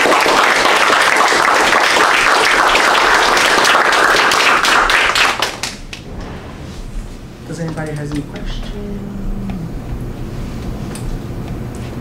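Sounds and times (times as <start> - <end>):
audience applauding: 0.0 - 6.1.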